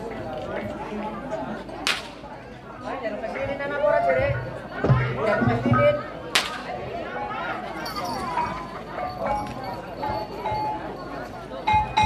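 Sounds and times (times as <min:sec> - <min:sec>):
crowd voices: 0:00.0 - 0:12.0
whip cracks: 0:01.8 - 0:02.2, 0:06.4 - 0:06.7.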